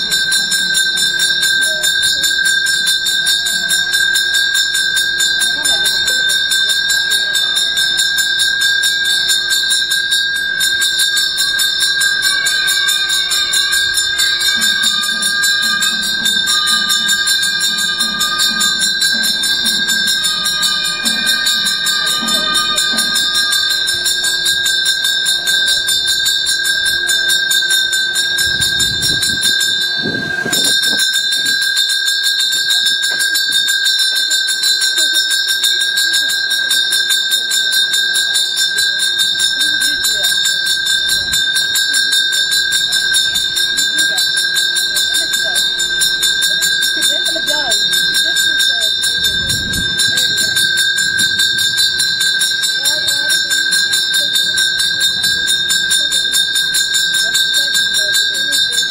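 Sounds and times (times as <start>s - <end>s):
bell rung rapidly: 0.0s - 58.9s.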